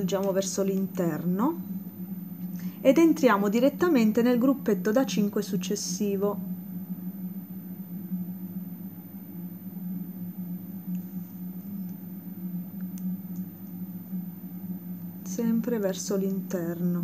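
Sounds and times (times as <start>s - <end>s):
low hum: 0.0s - 17.0s.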